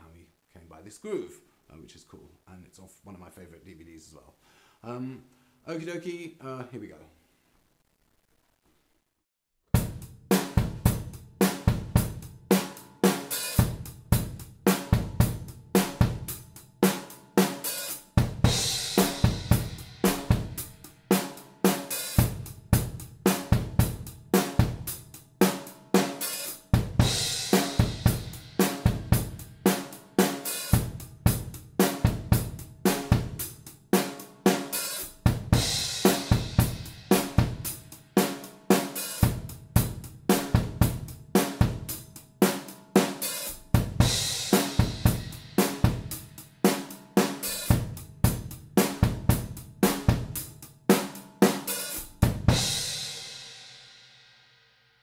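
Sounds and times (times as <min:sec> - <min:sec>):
drum kit groove: 0:09.7 - 0:54.0.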